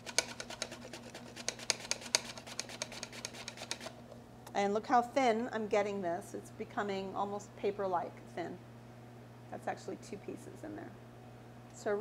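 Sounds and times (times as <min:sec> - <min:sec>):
fruit sliced on mandoline: 0:00.0 - 0:04.0.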